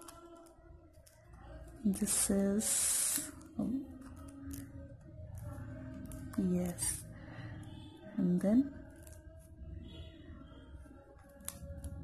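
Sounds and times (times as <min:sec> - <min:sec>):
small clicks: 0:00.0 - 0:01.8.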